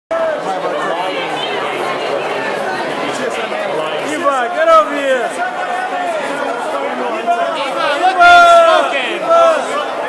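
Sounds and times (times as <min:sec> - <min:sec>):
indistinct chatter: 0:00.1 - 0:10.0.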